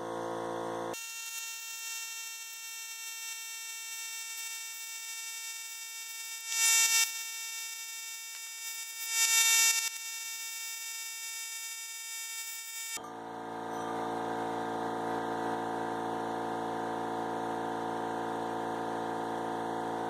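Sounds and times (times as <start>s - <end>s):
steady whining hum: 0.0s - 1.0s.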